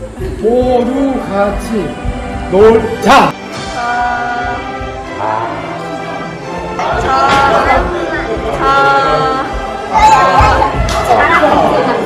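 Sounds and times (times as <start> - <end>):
several voices singing: 3.5 - 12.0.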